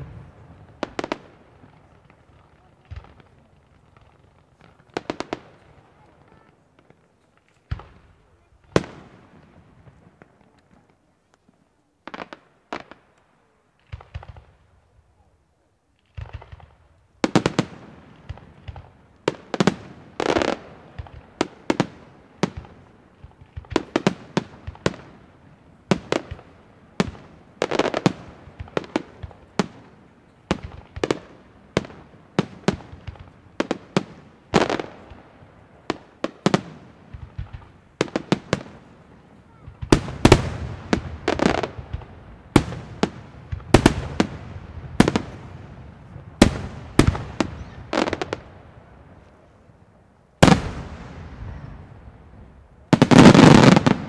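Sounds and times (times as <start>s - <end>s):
fireworks bursting: 0.0s - 11.2s, 15.9s - 49.5s, 50.4s - 54.0s.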